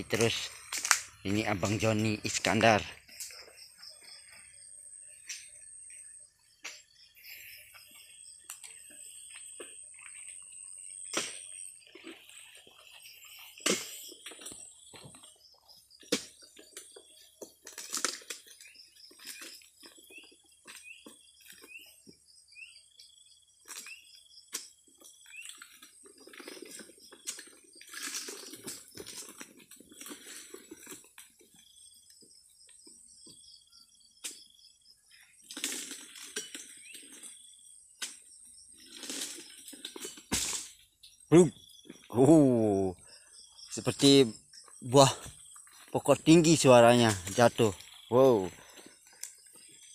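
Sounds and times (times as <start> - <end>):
birds chirping: 0.0 - 29.2, 29.8 - 49.9
insects droning: 0.0 - 49.9
rustling fronds: 24.9 - 31.6, 38.8 - 40.8.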